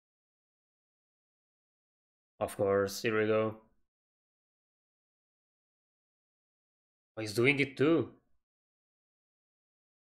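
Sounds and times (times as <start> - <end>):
man speaking: 2.4 - 3.7, 7.2 - 8.2.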